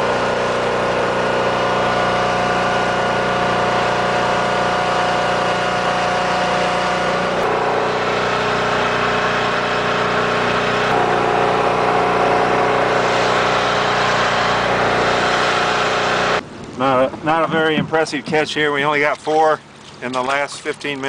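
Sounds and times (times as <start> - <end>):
boat engines humming: 0.0 - 21.0.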